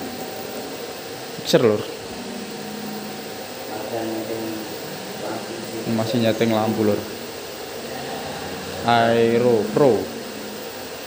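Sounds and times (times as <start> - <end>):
fans whirring: 0.0 - 11.0
man speaking: 3.6 - 7.2, 7.8 - 10.6.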